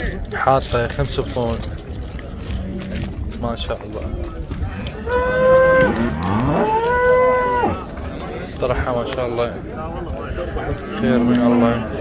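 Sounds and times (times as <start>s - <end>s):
cattle mooing: 5.0s - 7.8s.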